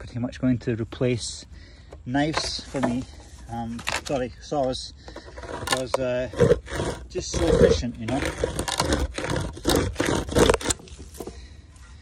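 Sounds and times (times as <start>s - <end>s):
hand chainsaw rasping through log: 5.0s - 11.4s.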